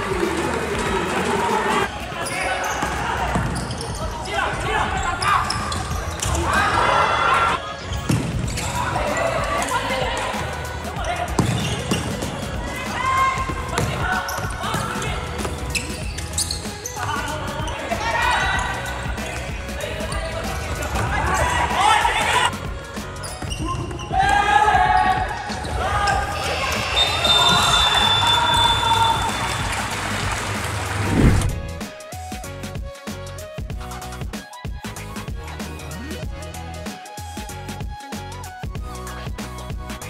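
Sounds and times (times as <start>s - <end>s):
players shouting: 0.0s - 7.9s, 8.6s - 16.0s, 16.9s - 30.2s
background music: 0.0s - 40.0s
ball bounces and kicks: 8.1s - 8.7s, 11.3s - 12.3s
high whistle tone: 26.9s - 29.4s.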